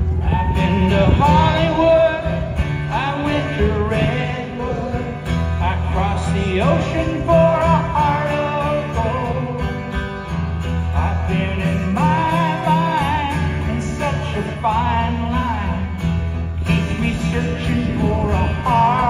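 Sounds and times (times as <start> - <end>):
strummed acoustic guitar: 0.0 - 19.0
person singing: 11.0 - 16.0.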